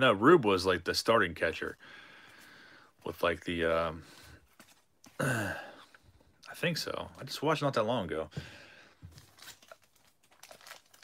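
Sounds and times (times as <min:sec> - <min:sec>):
wrapper crinkling: 0:09.0 - 0:11.0.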